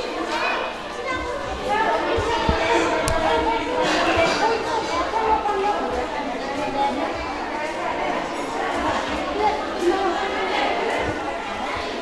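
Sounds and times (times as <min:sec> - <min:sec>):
women and children talking: 0:00.0 - 0:12.0.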